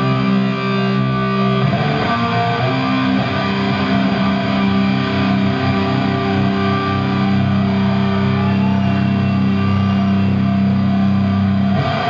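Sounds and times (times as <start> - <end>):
distorted electric guitar chord: 0.0 - 8.5, 10.6 - 12.0.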